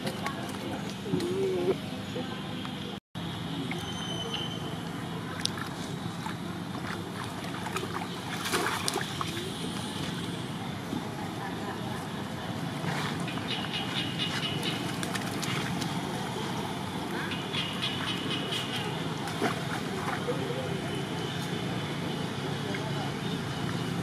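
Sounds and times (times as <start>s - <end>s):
faint voices: 0.0s - 24.0s
steady outdoor hiss: 0.0s - 24.0s
splashing in muddy puddle: 4.7s - 11.2s, 12.6s - 21.7s.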